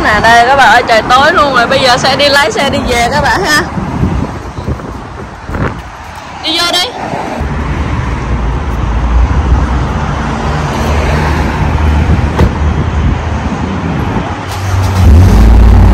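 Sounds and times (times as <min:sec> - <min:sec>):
low rumble of road traffic: 0:00.0 - 0:15.9.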